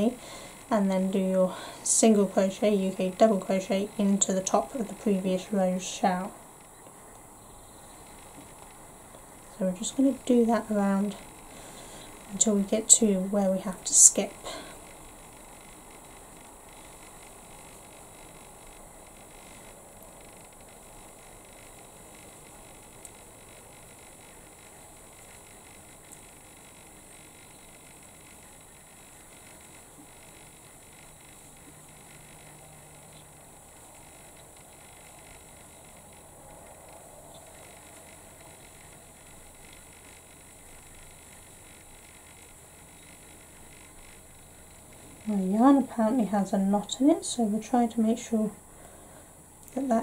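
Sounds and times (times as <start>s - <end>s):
background hiss: 0.0s - 50.0s
low room hum: 0.0s - 50.0s
tiny clicks: 13.8s - 45.4s.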